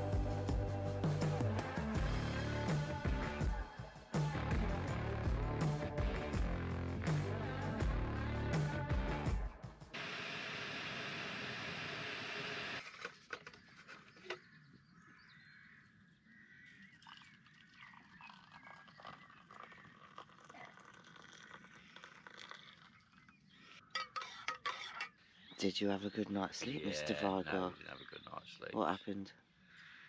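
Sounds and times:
water poured into mug: 16.8 - 23.4
spoon clinking against mug: 24.0 - 25.2.

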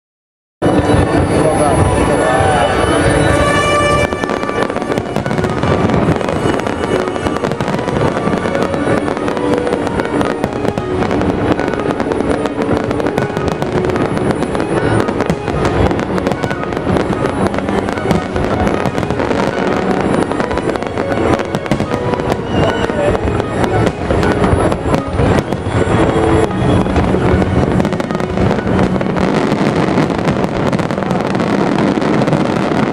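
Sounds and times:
fireworks bursting and crackling: 0.6 - 32.9.

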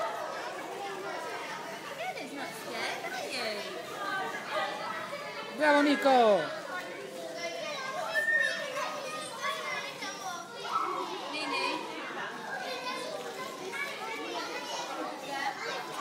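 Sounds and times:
young children chattering: 0.0 - 16.0.

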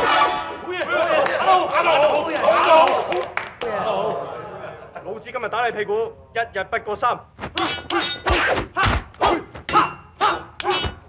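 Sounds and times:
stick blows thwacking: 7.4 - 11.0.

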